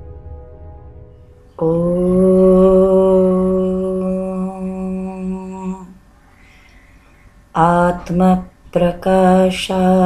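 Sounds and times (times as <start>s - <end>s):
person chanting a held om: 1.5s - 6.0s.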